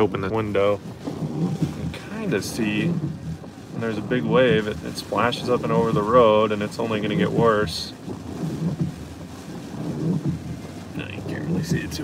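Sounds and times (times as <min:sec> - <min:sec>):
driving rain on a car: 0:00.0 - 0:12.0
wind buffeting a car: 0:00.0 - 0:12.0.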